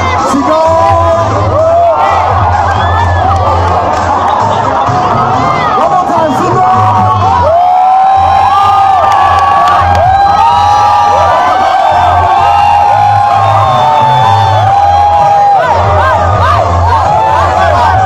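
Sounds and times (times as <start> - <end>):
crowd cheering and shouting: 0.0 - 18.0
loud music with pulsing bass: 0.0 - 18.0.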